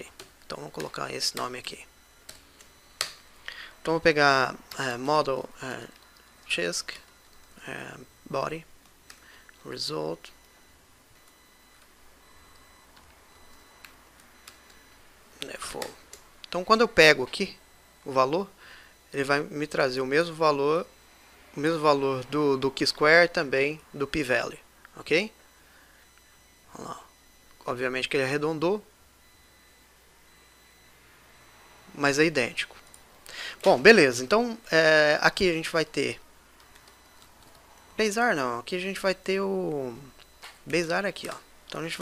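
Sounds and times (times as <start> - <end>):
faint low hum: 0.0 - 42.0
faint room tone hiss: 0.0 - 42.0
computer keyboard keystrokes: 36.6 - 37.6.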